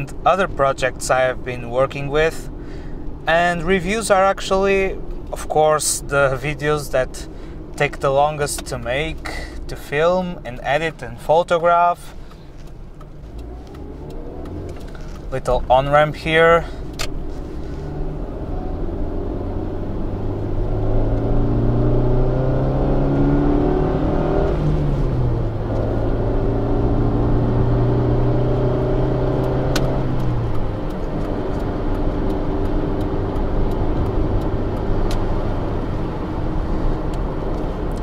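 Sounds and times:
car engine accelerating: 0.0 - 38.0.

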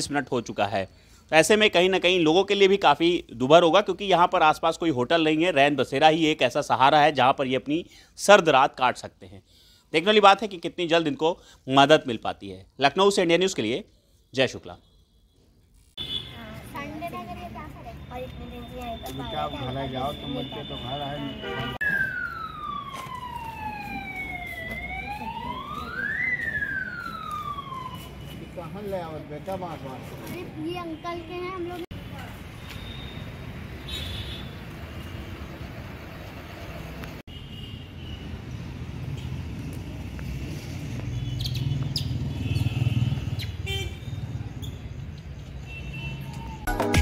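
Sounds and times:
siren wailing: 19.0 - 28.9, 46.1 - 47.0
vehicle passing: 38.4 - 43.5
high chirps and squeaks: 41.3 - 42.7, 44.5 - 45.1.

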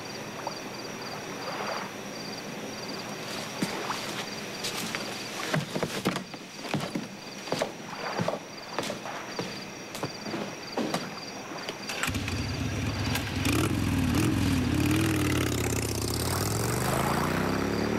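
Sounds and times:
crickets chirping: 0.0 - 17.9
footsteps on stone steps: 3.3 - 11.8.

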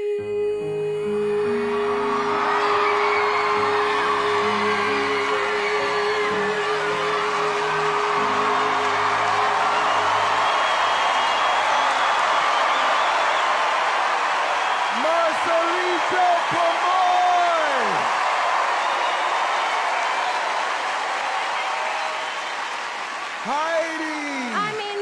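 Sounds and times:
singer holding a long note: 0.0 - 10.4
audience cheering and whooping: 1.4 - 25.0.

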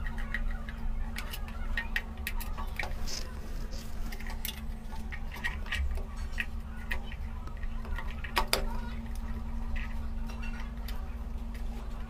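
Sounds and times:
plastic clicks and scrapes: 0.0 - 12.0
steady low hum: 0.0 - 12.0.

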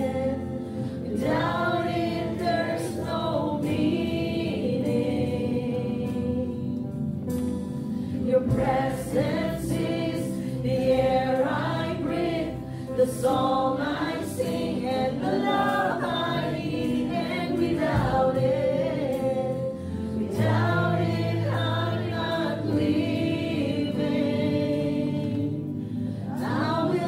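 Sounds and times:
group singing worship song: 0.0 - 27.0.

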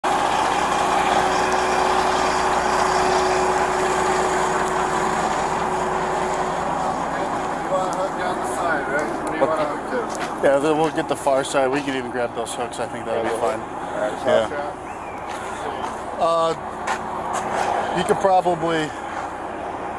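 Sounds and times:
diesel truck engine idling: 0.0 - 19.9.

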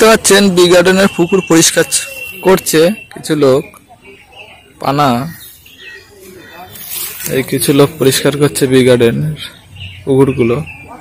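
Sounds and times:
man speaking: 0.0 - 3.7, 6.2 - 11.0.

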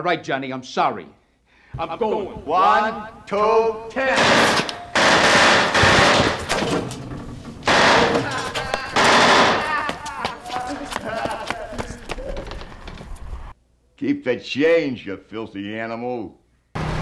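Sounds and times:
man yelling: 1.8 - 4.3, 8.1 - 12.5
scattered gunshots: 4.0 - 6.9, 7.6 - 9.8
submachine gun bursts: 4.2 - 6.4, 7.7 - 8.2.

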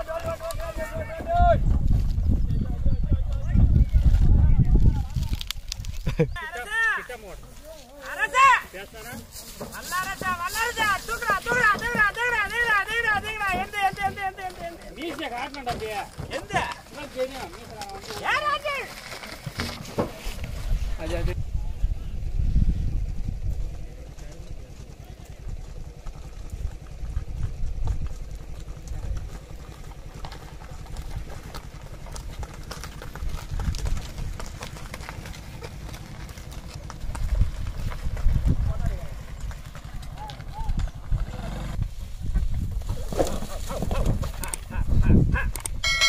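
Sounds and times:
wind rumble on microphone: 0.2 - 6.4, 20.2 - 24.6, 25.4 - 29.7, 33.1 - 34.7, 37.0 - 39.6, 40.2 - 45.9
man calling out: 9.9 - 14.7.

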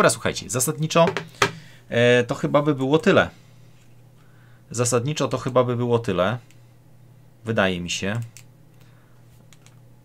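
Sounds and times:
person speaking: 0.0 - 3.4.

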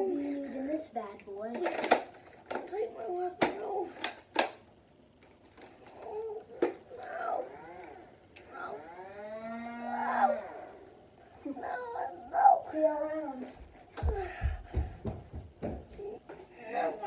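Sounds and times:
plastic toy blaster clacks: 1.5 - 2.7, 3.4 - 4.6
boy whining: 5.9 - 15.2, 15.9 - 16.4
boy groaning: 6.0 - 7.9, 9.5 - 10.8, 11.4 - 13.0.

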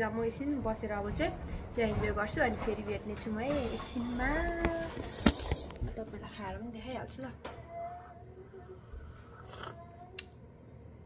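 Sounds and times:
sip from a mug: 9.1 - 9.9.

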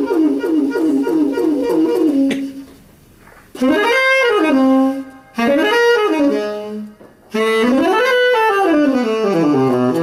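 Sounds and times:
tenor saxophone: 0.0 - 2.7, 3.6 - 10.0.

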